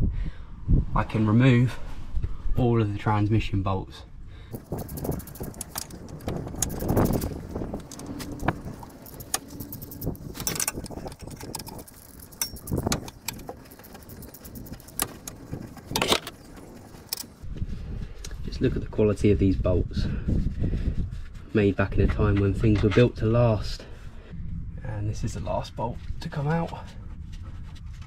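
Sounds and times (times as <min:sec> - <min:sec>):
metallic clinks: 0:04.5 - 0:17.4
ratchet wrench clicking: 0:04.5 - 0:17.4.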